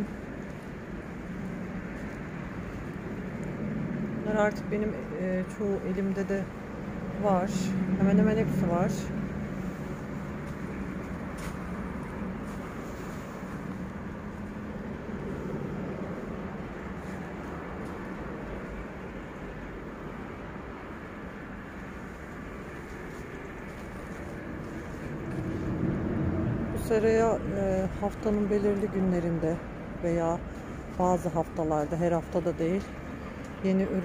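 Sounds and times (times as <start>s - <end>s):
low background hum and rumble: 0.0s - 34.0s.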